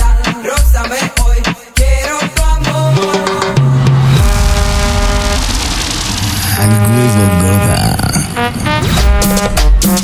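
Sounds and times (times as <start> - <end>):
loud dense rushing noise: 3.7 - 8.4.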